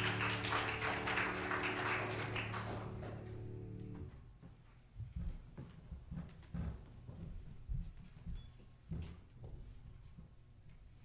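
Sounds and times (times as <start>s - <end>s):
audience clapping: 0.0s - 4.1s
piano chord ringing: 0.0s - 4.1s.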